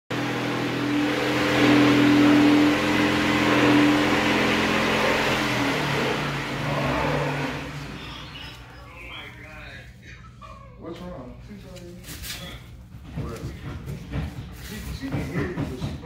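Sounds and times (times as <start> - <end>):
loud machine drone: 0.1 - 9.0.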